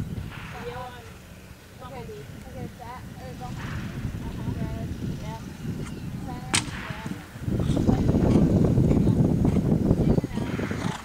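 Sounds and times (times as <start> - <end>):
low rumble: 0.0 - 10.9
sharp crack: 6.5 - 7.7.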